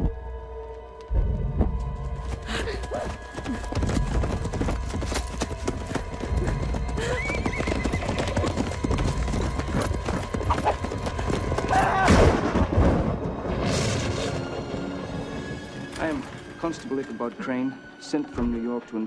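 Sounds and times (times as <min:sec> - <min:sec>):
dark orchestral music: 0:00.0 - 0:19.0
horse hoofbeats: 0:01.4 - 0:11.9
horse whinnying: 0:07.0 - 0:08.6.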